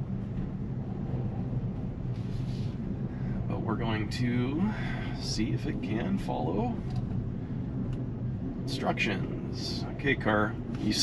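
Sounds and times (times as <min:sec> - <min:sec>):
low hum in car cabin: 0:00.0 - 0:11.0
road noise: 0:00.0 - 0:11.0.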